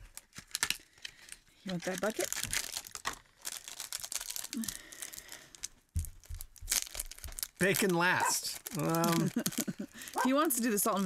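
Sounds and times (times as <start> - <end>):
snack packet crinkling: 0.0 - 11.0.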